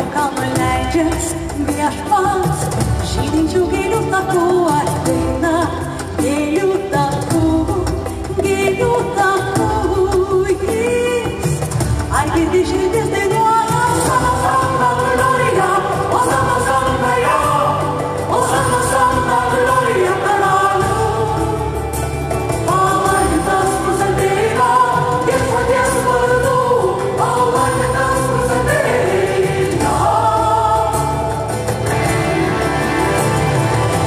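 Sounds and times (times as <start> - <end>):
rock opera singing with choir and band: 7.9 - 34.0.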